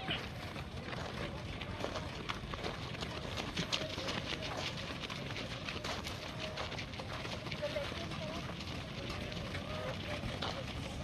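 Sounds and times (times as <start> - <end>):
footsteps on dirt: 0.0 - 11.0.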